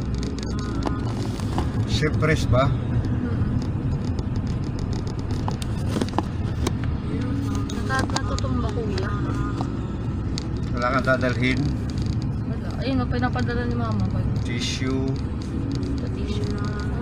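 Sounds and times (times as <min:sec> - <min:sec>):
car engine and tyres droning: 0:00.0 - 0:17.0.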